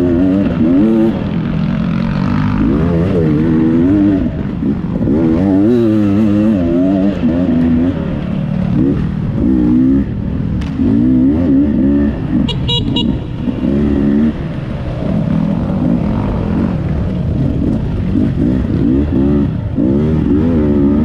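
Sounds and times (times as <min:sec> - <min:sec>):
dirt bike engine revving: 0:00.0 - 0:21.0.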